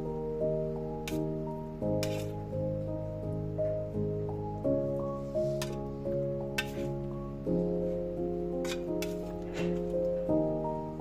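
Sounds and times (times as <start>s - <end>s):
background music of sustained chords: 0.0s - 11.0s.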